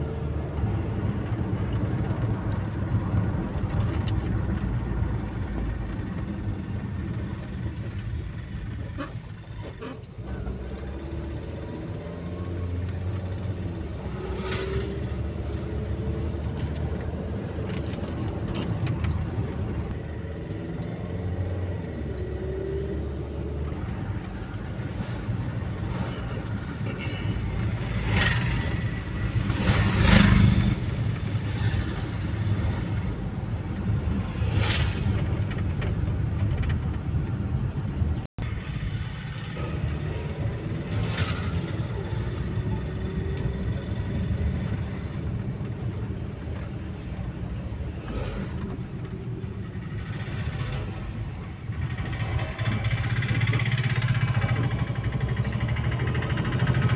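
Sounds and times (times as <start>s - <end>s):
engine and road noise rumble: 0.0s - 56.9s.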